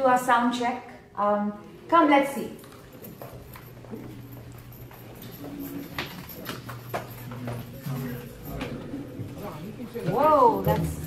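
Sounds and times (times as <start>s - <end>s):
steady low hum: 0.0s - 11.0s
footsteps on hard floor: 3.0s - 9.6s.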